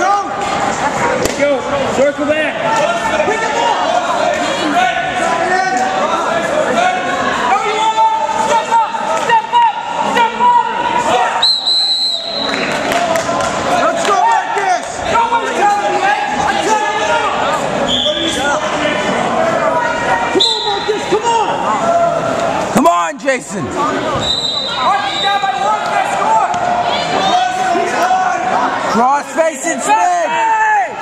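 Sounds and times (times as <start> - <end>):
referee's whistle: 11.4 - 12.6, 17.9 - 18.4, 20.4 - 21.0, 24.2 - 25.6
people shouting: 24.2 - 29.0, 29.8 - 31.0.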